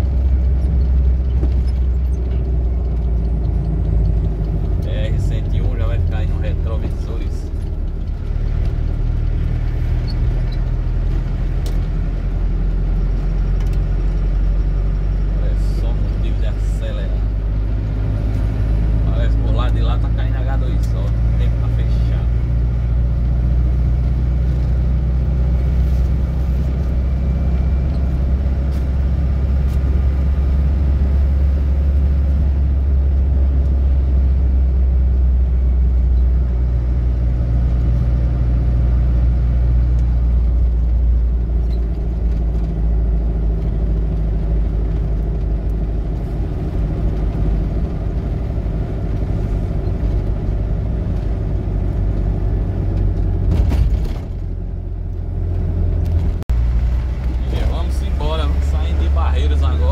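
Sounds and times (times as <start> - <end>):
vehicle engine and road noise: 0.0 - 59.9.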